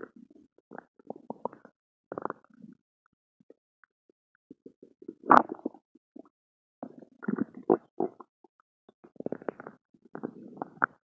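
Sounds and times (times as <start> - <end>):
stomach gurgling: 0.0 - 2.8, 4.5 - 11.0.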